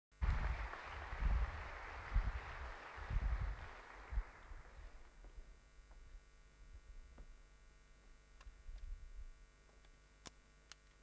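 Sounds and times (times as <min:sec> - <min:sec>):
audience rustling: 0:00.2 - 0:05.3.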